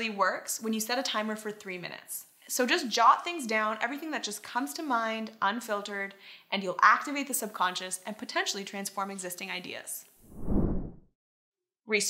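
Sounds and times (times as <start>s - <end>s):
low whoosh: 10.2s - 11.0s.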